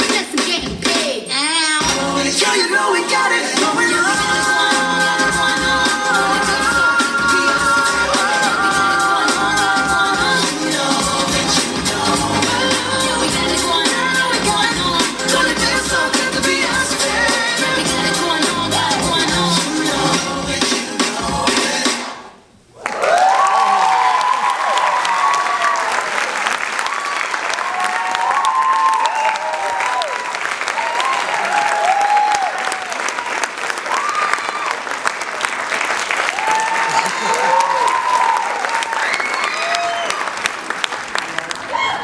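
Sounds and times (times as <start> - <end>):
music: 0.0 - 22.3
audience whooping and shouting: 22.8 - 34.9, 36.2 - 40.5, 41.6 - 42.0
audience clapping: 22.8 - 42.0.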